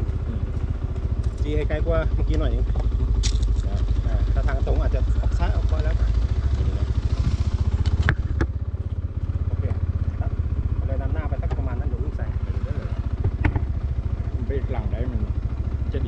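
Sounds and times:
small engine idling: 0.0s - 16.0s.

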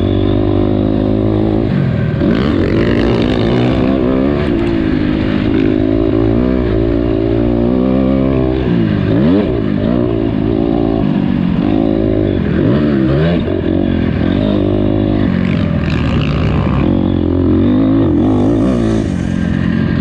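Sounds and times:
motorcycle engine revving hard: 0.0s - 20.0s.

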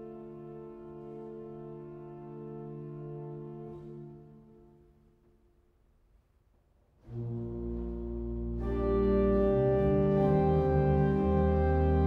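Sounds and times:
organ chord with pedal notes: 7.4s - 12.0s.

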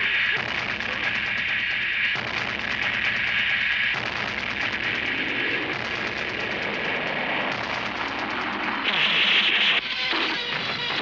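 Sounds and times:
action sound effects: 0.0s - 11.0s.

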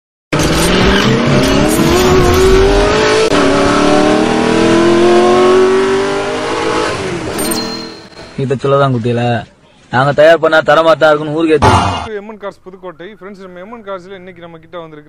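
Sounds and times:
car engine revving: 0.4s - 7.3s.

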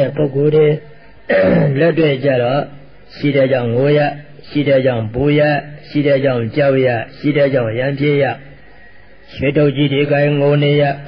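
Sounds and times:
man speaking: 0.0s - 8.5s, 9.3s - 11.0s.

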